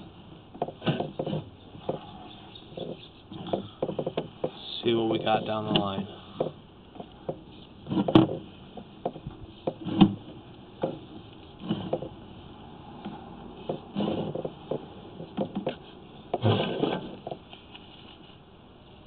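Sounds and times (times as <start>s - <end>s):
scraping rustle: 9.5s - 12.2s, 12.9s - 18.4s.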